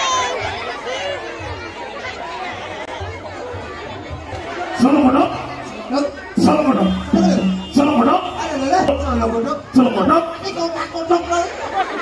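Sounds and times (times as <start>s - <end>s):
crowd chatter: 0.0s - 12.0s
loud voice: 6.4s - 10.9s.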